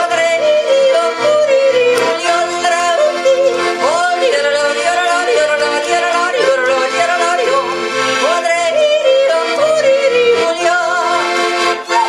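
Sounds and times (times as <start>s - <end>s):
piano accordion chords: 0.0s - 12.0s.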